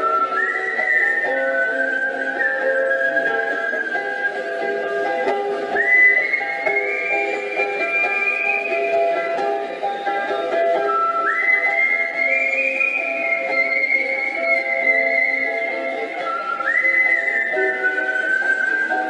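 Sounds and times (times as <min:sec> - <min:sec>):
person whistling melody: 0:00.0 - 0:04.8, 0:05.7 - 0:09.4, 0:10.8 - 0:19.0
ukulele playing: 0:00.0 - 0:12.5.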